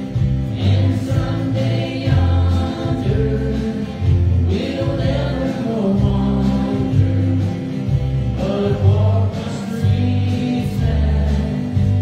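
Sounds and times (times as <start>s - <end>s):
acoustic guitar: 0.0s - 12.0s
bass line: 0.0s - 12.0s
congregation singing: 0.0s - 12.0s
drums: 0.0s - 12.0s.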